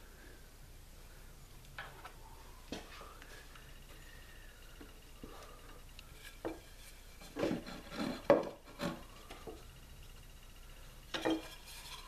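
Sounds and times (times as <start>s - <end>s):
wooden strip scraping and knocking: 6.2s - 9.6s, 11.1s - 12.0s.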